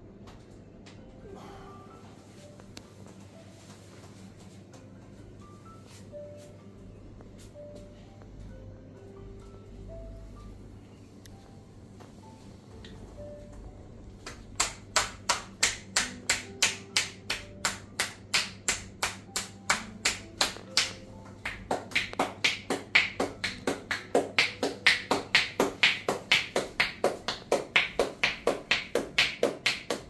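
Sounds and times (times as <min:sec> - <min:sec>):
soft background music: 0:00.0 - 0:30.0
hands patting and tapping a back: 0:14.2 - 0:30.0.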